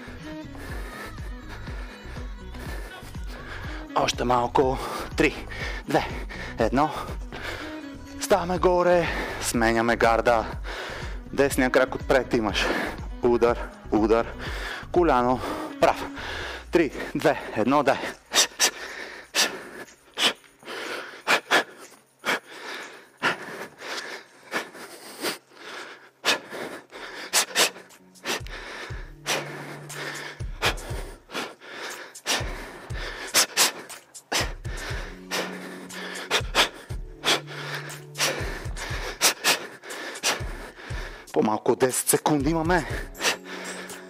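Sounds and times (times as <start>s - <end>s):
man's forceful breaths out: 14.3s - 41.4s, 42.8s - 44.0s.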